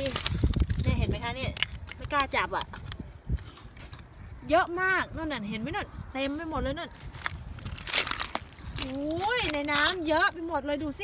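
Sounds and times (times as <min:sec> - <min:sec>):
woman speaking: 0:00.8 - 0:02.8, 0:04.4 - 0:07.0, 0:08.8 - 0:11.0.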